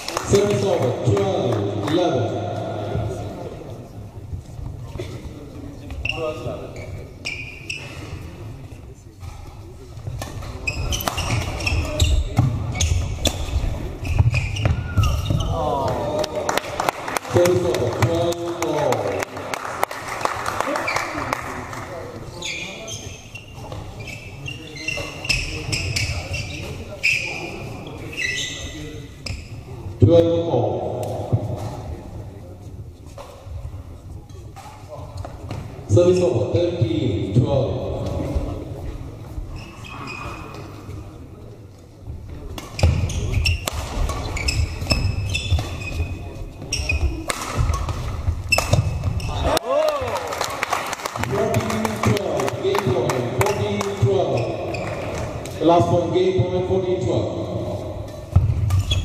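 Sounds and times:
shoe squeaks on court: 5.9 - 8.3, 10.2 - 15.6, 22.3 - 29.7, 39.5 - 40.7, 42.6 - 47.9, 53.4 - 55.2, 58.6 - 59.0
rackets striking shuttlecock: 47.2 - 49.3
shouts and voices echoing: 49.3 - 54.6.

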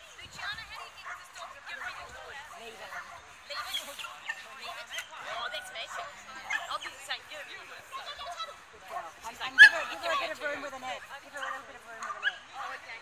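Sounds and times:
people talking and calling: 0.0 - 13.0.

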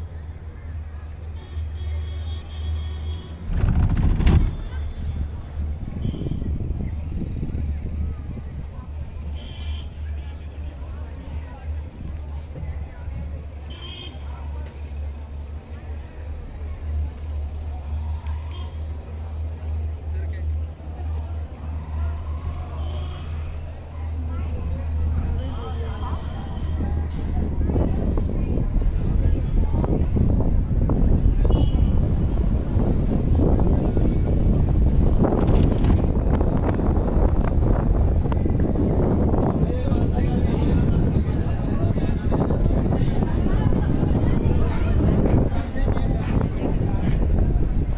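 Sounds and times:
faint voices of people: 0.0 - 47.9
gondola low rumble: 0.0 - 47.9
wind buffeting microphone: 3.1 - 18.0, 21.1 - 47.9
sharp clicks and rattles: 3.5 - 4.8, 35.3 - 36.4.

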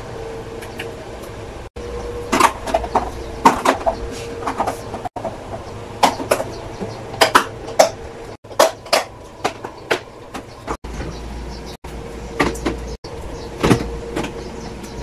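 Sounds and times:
steady low hum: 0.0 - 15.0
plastic containers clacking: 2.3 - 11.2.

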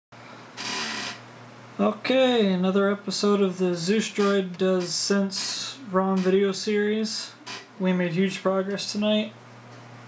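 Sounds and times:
faint steady hum: 0.2 - 10.0
man speaking: 1.8 - 9.4.

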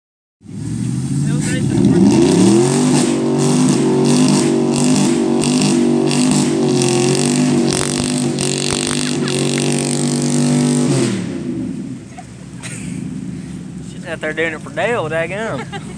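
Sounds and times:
truck engine revving: 0.4 - 15.9.

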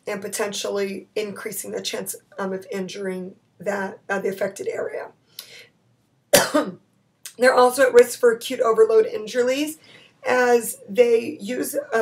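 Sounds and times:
woman coughing: 6.3 - 6.8
faint breath in: 9.8 - 10.2.

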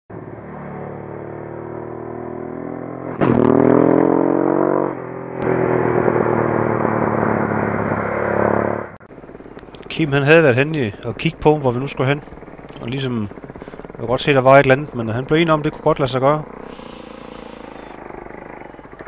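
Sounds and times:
motorcycle engine revving: 0.1 - 19.0.

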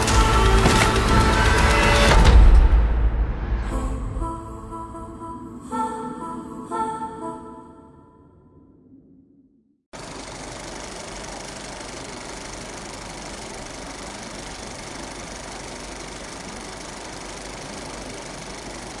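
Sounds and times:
music: 0.0 - 8.2.

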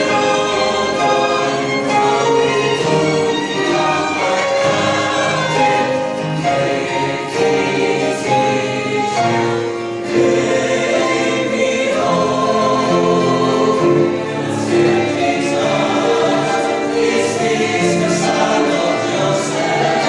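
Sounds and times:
mixed choir singing a hymn: 0.0 - 20.0.

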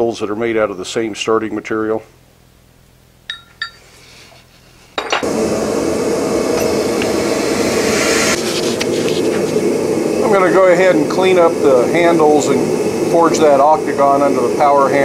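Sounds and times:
steel bars clinking: 3.3 - 3.9
power hammer running: 5.1 - 15.0.

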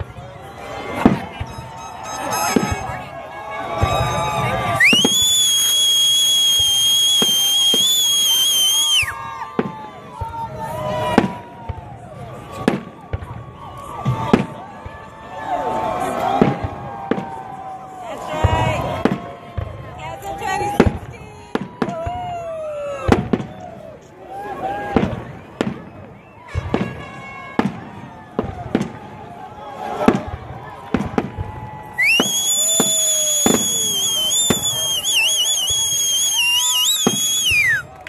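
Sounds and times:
fireworks bangs: 0.0 - 15.1, 16.1 - 17.4, 23.0 - 23.7, 24.8 - 29.3, 30.0 - 38.0
crowd voices: 0.0 - 38.0
shrill firework whistle: 1.3 - 3.1, 3.7 - 9.7, 31.9 - 37.9.

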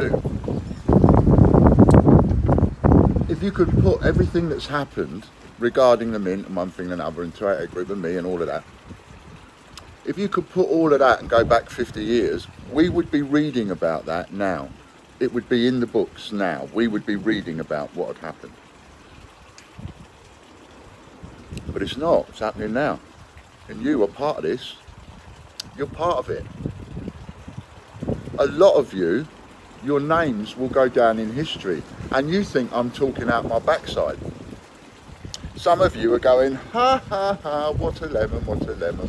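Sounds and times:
wind buffeting microphone: 0.0 - 14.2, 18.9 - 39.0
outdoor background noise: 0.0 - 39.0.

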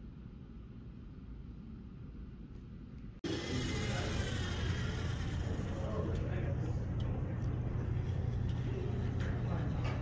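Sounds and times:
steady low hum: 0.0 - 10.0
robot motors whirring: 3.2 - 6.6.

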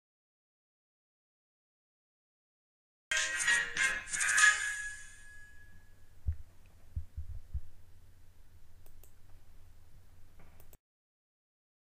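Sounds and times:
low steady hum: 4.9 - 10.8
dull low thumps: 6.2 - 7.8.

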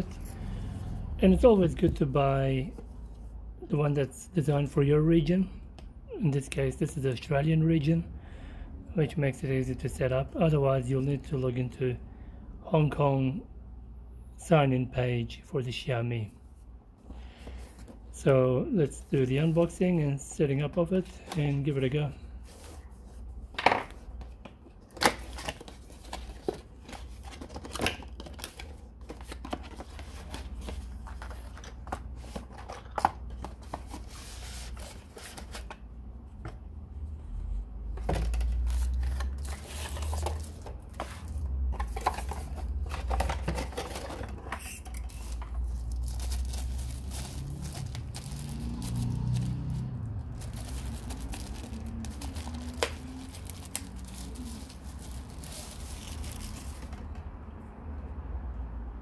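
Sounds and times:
paper rustling and crinkling: 23.9 - 35.8, 38.0 - 57.1.

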